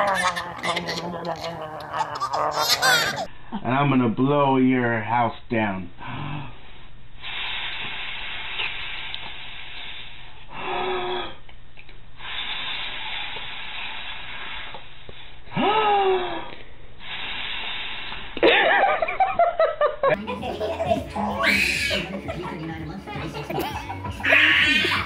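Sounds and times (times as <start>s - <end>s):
man blowing breaths of air: 7.2s - 11.3s, 12.2s - 15.4s, 17.0s - 18.4s.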